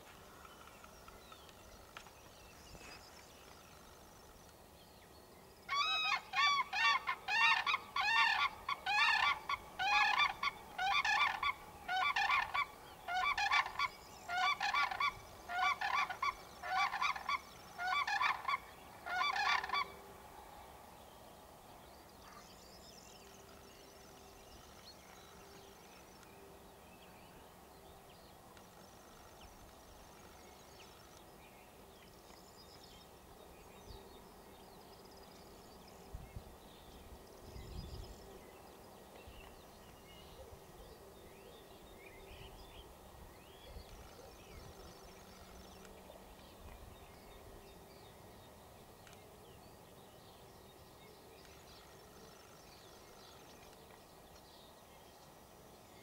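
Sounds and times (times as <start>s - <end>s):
cranes honking calls: 5.7s - 20.0s.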